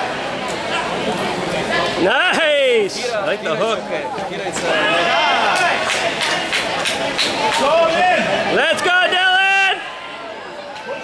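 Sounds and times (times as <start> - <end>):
people shouting and yelling: 4.4 - 11.0.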